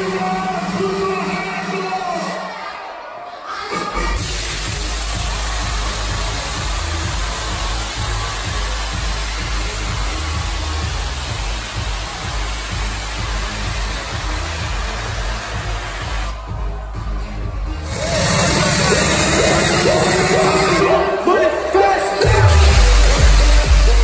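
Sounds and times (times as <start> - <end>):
electronic dance music: 0.0 - 24.0.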